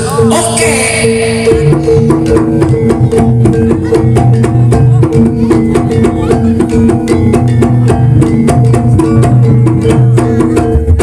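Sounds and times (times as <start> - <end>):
keyed percussion melody: 0.0 - 11.0.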